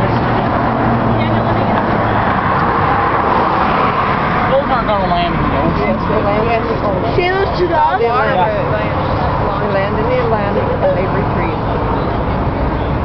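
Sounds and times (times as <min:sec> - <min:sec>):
highway traffic: 0:00.0 - 0:13.0
people's voices: 0:00.0 - 0:13.0.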